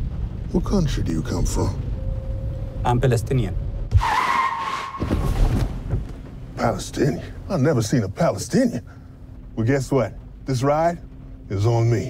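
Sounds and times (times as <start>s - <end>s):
tyres screeching under braking: 3.9s - 5.9s.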